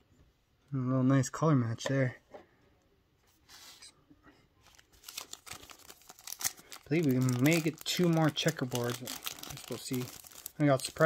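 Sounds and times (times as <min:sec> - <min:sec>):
foil wrapper crinkling and tearing: 0:04.7 - 0:11.0.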